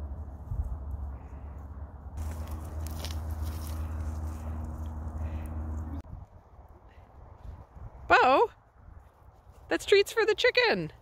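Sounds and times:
wind rumbling on microphone: 0.0s - 9.7s.

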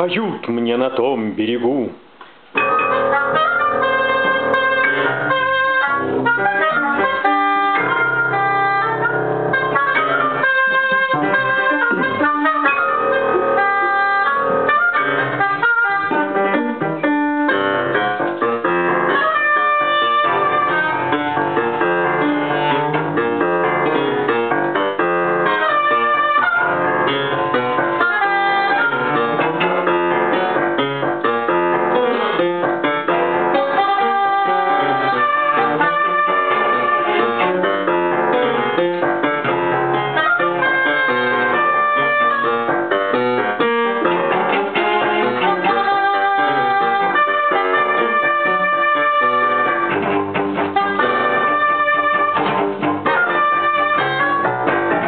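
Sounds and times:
instrumental ensemble playing: 2.6s - 55.0s.

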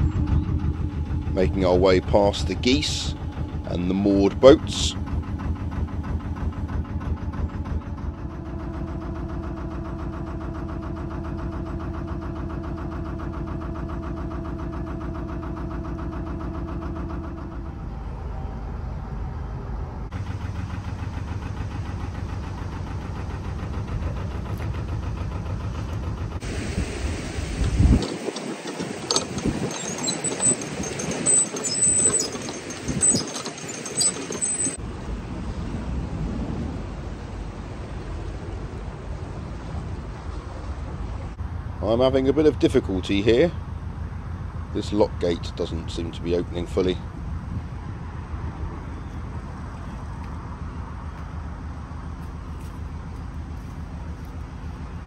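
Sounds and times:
boat engine running: 0.0s - 55.0s
water rushing through lock: 1.2s - 17.7s, 20.8s - 47.6s
wind buffeting microphone: 26.4s - 41.1s.

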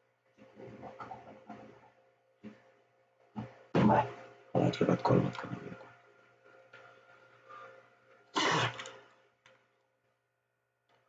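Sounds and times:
faint steady hum: 0.4s - 9.6s
person coughing: 8.4s - 8.9s.

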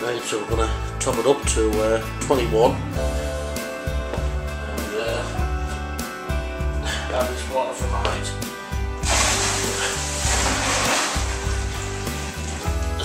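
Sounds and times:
music with guitar and bass: 0.0s - 13.0s
water pouring into plastic bucket: 9.0s - 13.0s.

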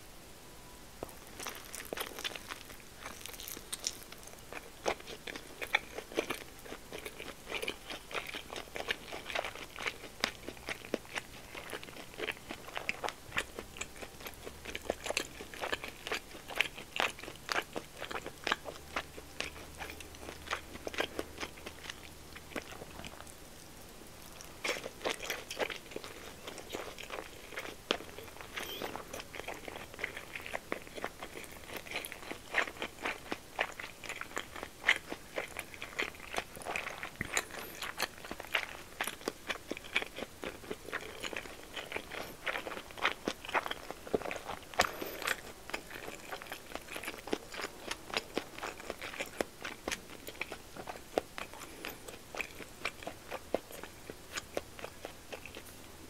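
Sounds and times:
close-miked chewing: 1.0s - 56.0s.

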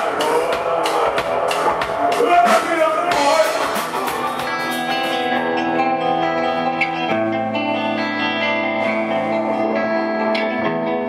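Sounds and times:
drum kit beat: 0.0s - 9.5s
live rock band playing: 0.0s - 11.0s.

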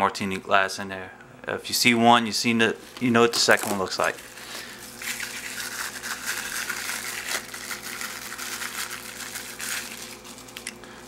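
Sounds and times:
plastic wrapping crinkling: 3.2s - 10.8s.

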